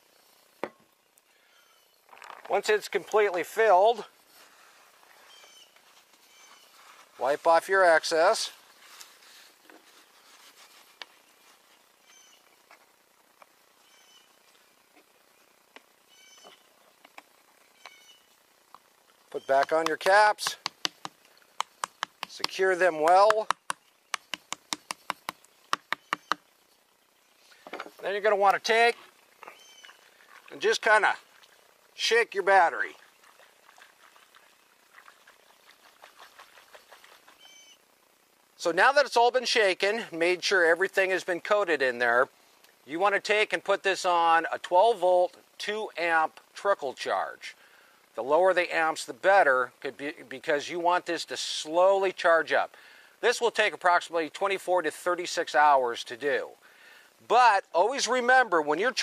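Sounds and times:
faint high chirps: 0:00.9 - 0:02.0, 0:10.9 - 0:12.7, 0:17.6 - 0:18.4, 0:37.3 - 0:37.9.

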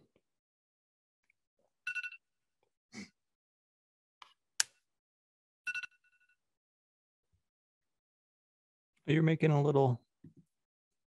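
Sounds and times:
two-tone electronic beep: 0:05.7 - 0:06.2.

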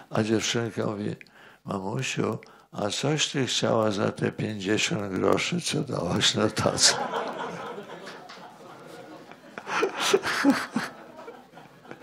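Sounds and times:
breathy laughter: 0:07.0 - 0:12.0.

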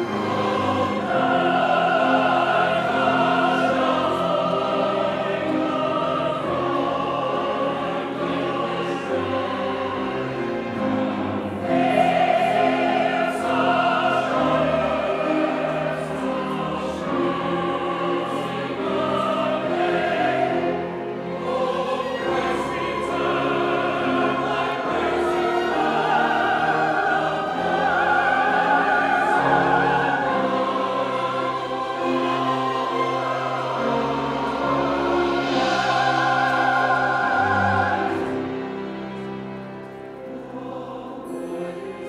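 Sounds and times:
choir singing held chords: 0:00.0 - 0:42.0
orchestra playing: 0:00.0 - 0:42.0.

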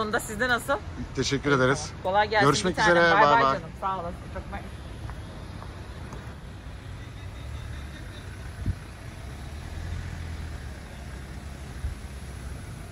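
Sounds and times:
road traffic rumble: 0:00.0 - 0:12.9.

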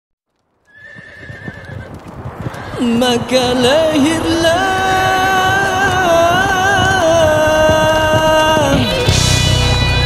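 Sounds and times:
galloping horse hoofbeats: 0:00.3 - 0:10.0.

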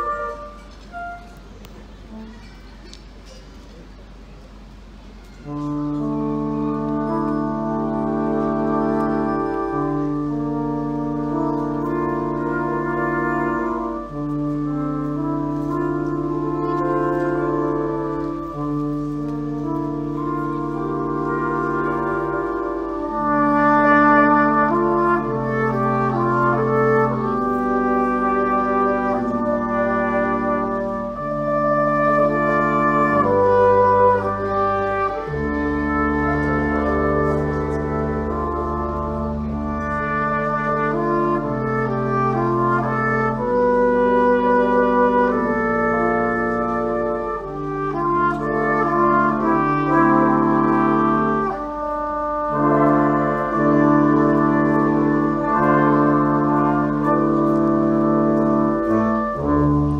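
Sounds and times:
flugelhorn melody: 0:00.0 - 0:02.7, 0:05.3 - 0:59.9
brass horns sustained chords: 0:00.0 - 0:02.8, 0:05.4 - 0:59.9.

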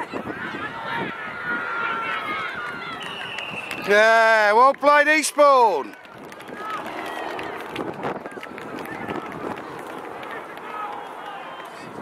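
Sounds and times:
steady outdoor noise: 0:00.0 - 0:12.0.

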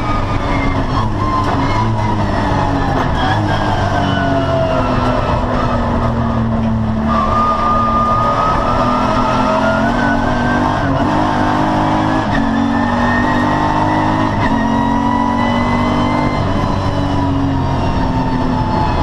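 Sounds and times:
race car engine accelerating: 0:00.0 - 0:19.0.

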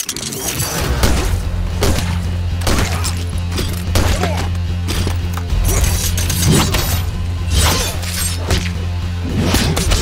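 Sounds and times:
film action score with deep bass: 0:00.0 - 0:10.0.

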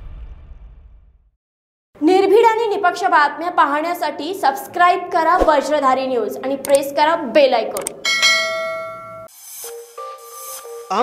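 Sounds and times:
bell chime ringing: 0:08.0 - 0:09.3.

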